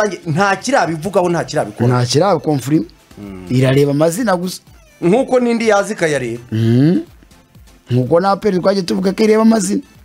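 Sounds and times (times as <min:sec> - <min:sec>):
man's drawn-out vocal sound: 0:03.2 - 0:03.8, 0:06.5 - 0:07.1.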